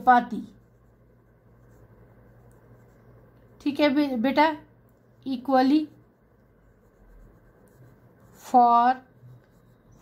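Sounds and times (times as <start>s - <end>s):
pen scratching on paper: 0.0s - 4.1s, 5.2s - 10.0s
low steady hum: 0.0s - 10.0s.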